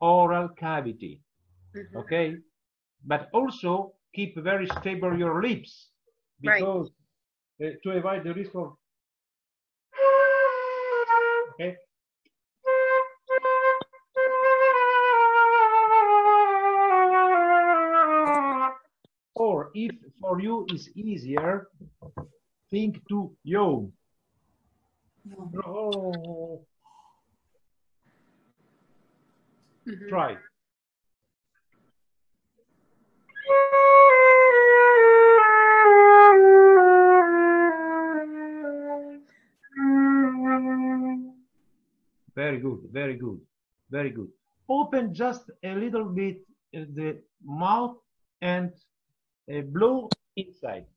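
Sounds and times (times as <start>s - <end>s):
flute playing: 9.9s - 11.6s, 12.6s - 18.9s, 33.3s - 41.4s.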